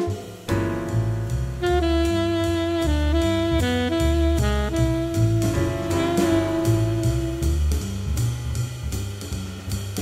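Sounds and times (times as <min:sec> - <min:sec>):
jazz blues band: 0:00.0 - 0:10.0.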